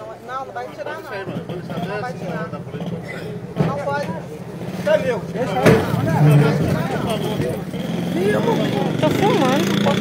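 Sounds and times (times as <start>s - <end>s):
people arguing and calling out: 0.0s - 10.0s
vehicle engine hum: 1.3s - 10.0s.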